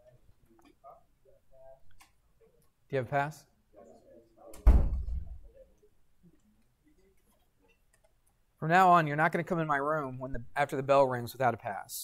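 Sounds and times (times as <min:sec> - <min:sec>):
door shutting with heavy thud: 0:04.6 - 0:05.4.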